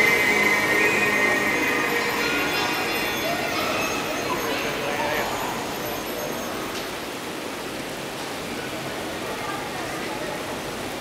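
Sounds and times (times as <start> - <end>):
fountain jets spraying and splashing: 0.0 - 11.0.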